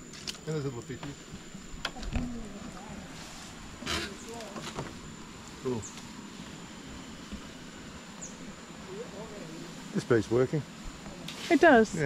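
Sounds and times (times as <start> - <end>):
high-pitched insect drone: 0.0 - 12.0.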